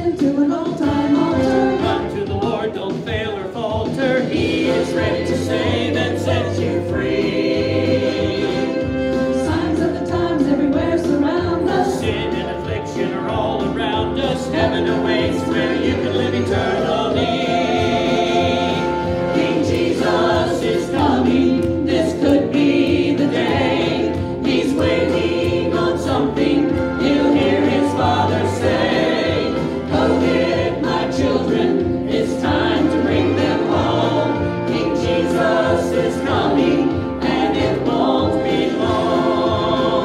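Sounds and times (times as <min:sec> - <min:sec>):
choir singing gospel song: 0:00.0 - 0:40.0
instrumental accompaniment: 0:00.0 - 0:40.0.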